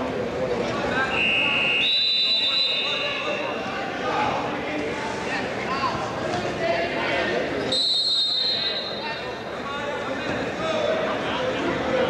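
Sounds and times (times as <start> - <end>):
spectators' voices in a hall: 0.0 - 12.0
referee's whistle blast: 1.1 - 3.6, 7.7 - 9.2.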